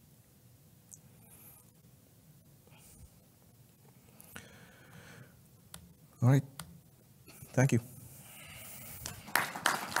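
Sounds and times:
faint room hiss: 0:00.0 - 0:10.0
audience applause: 0:09.1 - 0:10.0.

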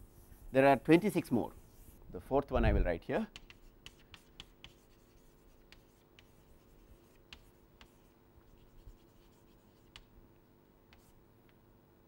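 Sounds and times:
chalk tapping and scratching: 0:00.0 - 0:02.0, 0:03.2 - 0:10.2, 0:10.9 - 0:11.2.

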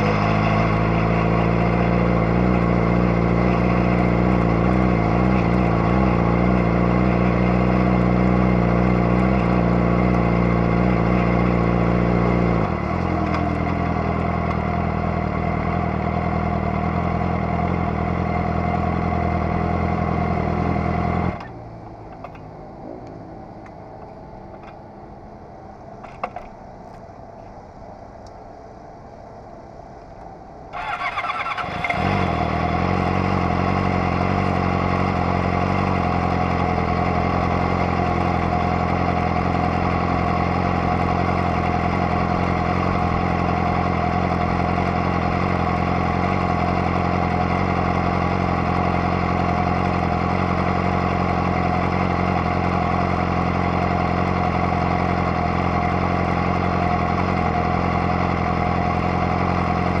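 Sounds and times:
motorcycle engine idling: 0:00.0 - 0:25.4, 0:30.7 - 1:00.0
motorcycle starter cranking: 0:30.8 - 0:32.1.

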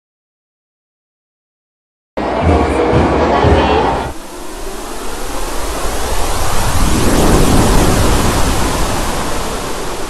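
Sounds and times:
rush of hissing noise: 0:03.9 - 0:10.0.

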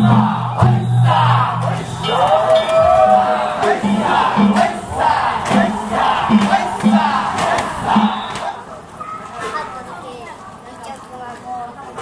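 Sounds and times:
festival music: 0:00.0 - 0:09.2
crowd shouting calls: 0:00.0 - 0:09.6.

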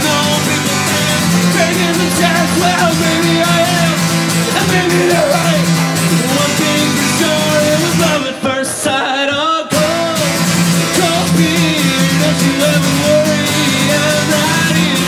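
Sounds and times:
man singing: 0:00.0 - 0:15.0
strummed acoustic guitar: 0:00.0 - 0:15.0.

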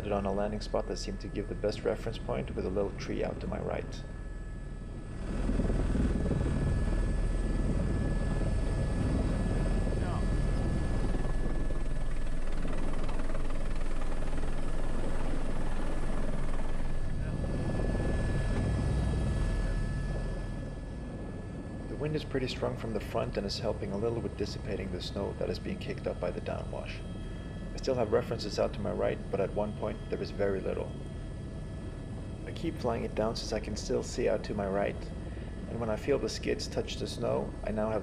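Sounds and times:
helicopter rotor and turbine noise: 0:00.0 - 0:38.0.

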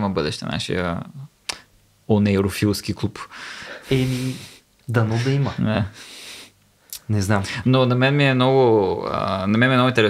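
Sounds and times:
men talking: 0:02.1 - 0:06.1, 0:06.9 - 0:10.0.

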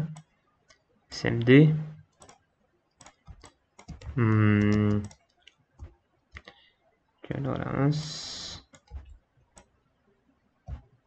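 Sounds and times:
keyboard and mouse clicks: 0:00.0 - 0:00.8, 0:02.1 - 0:02.4, 0:03.0 - 0:06.6, 0:08.6 - 0:09.8
drawn-out vocal sound: 0:04.1 - 0:05.1.

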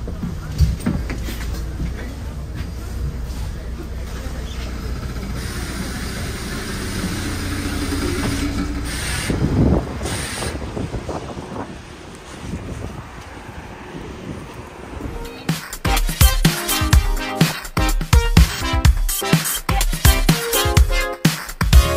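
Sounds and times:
bus interior low hum: 0:00.0 - 0:15.5
street noise: 0:00.0 - 0:21.9
short hissing bursts: 0:08.8 - 0:10.6.

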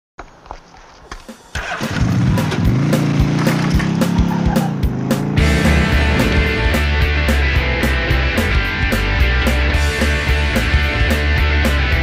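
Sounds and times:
steady drum beat: 0:01.1 - 0:12.0
motorcycle engine revving: 0:01.2 - 0:08.7
rock band playing: 0:01.2 - 0:12.0.

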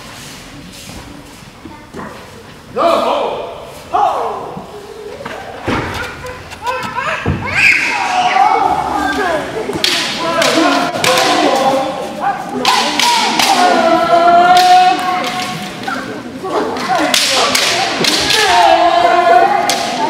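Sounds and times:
fighters shouting: 0:06.6 - 0:20.0
bamboo swords clacking: 0:09.8 - 0:11.9, 0:12.6 - 0:13.8, 0:14.5 - 0:18.9, 0:19.6 - 0:20.0.

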